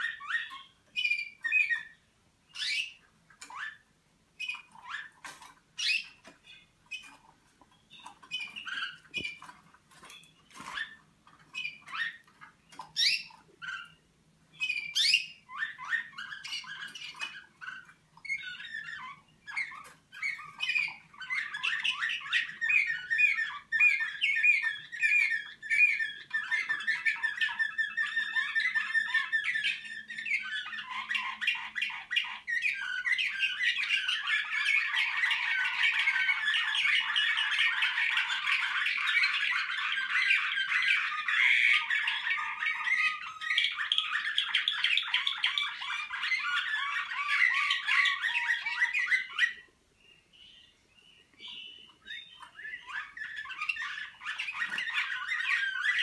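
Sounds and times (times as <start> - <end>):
canary singing: 0.0 - 56.0.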